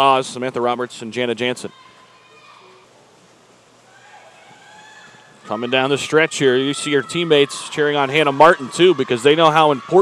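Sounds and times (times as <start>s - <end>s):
distant shouts of cheering: 1.4s - 3.0s, 3.8s - 10.0s.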